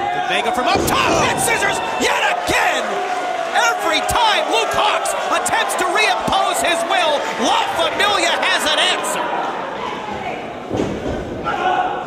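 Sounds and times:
crowd voices: 0.0s - 12.0s.

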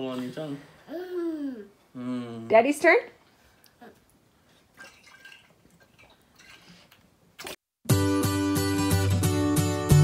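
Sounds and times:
water moving in bottle: 4.6s - 7.6s.

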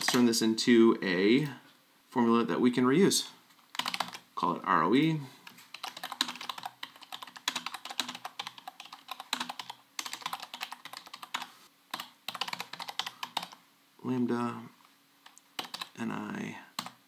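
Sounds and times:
typing on computer keyboard: 0.0s - 0.3s, 3.7s - 4.2s, 5.7s - 13.6s, 15.3s - 16.0s, 16.8s - 17.0s.

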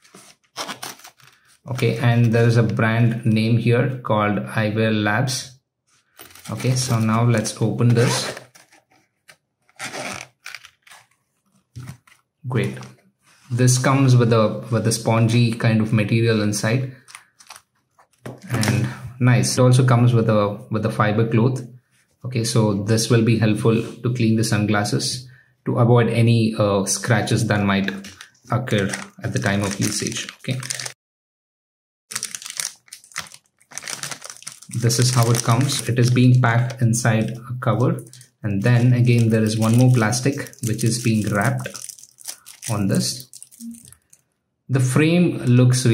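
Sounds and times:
plastic bag crinkling: 0.0s - 1.7s, 6.1s - 12.2s, 17.0s - 18.7s, 28.0s - 31.0s, 32.1s - 37.3s, 38.0s - 44.3s
zipper pulled open: 7.9s - 9.0s, 9.7s - 11.1s.

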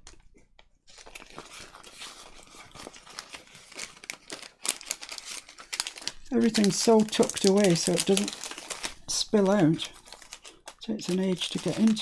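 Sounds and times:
plastic packet crinkling: 0.0s - 12.0s.

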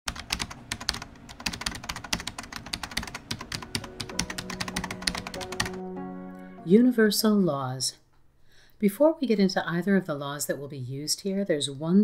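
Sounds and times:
keyboard typing clicks: 0.1s - 5.8s
held music notes: 3.3s - 7.4s.

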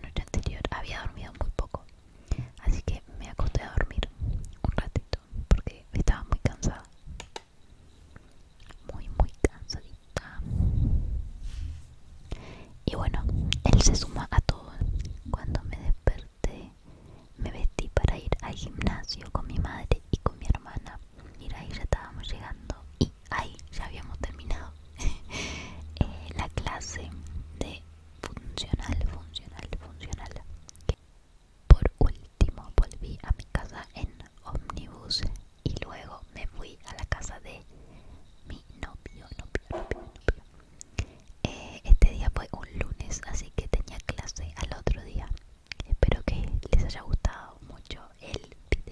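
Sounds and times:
woman whispering: 0.0s - 6.9s, 8.6s - 10.5s, 12.4s - 31.0s, 31.7s - 37.7s, 38.5s - 48.9s
low steady hum: 0.0s - 48.9s.

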